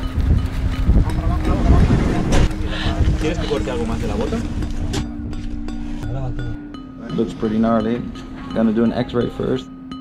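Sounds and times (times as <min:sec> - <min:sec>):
low vehicle rumble: 0:00.0 - 0:08.6.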